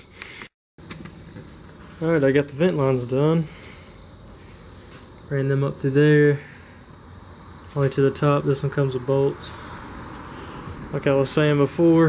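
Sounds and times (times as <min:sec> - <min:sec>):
room noise: 0:00.0 - 0:12.0.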